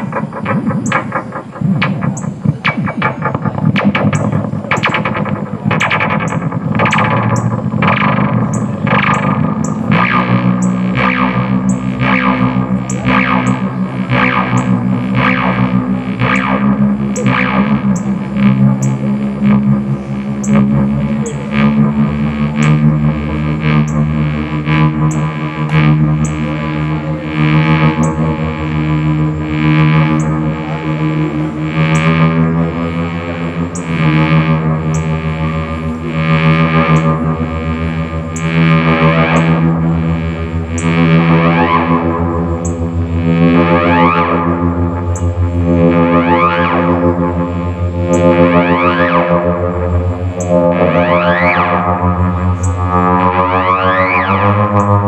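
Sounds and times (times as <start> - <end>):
distorted echoing electronic music: 0.0 - 55.0
steady low drone: 0.0 - 55.0.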